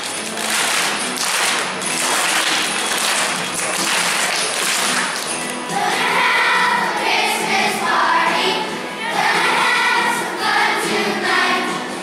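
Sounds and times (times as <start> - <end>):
children's choir singing: 5.6 - 12.0.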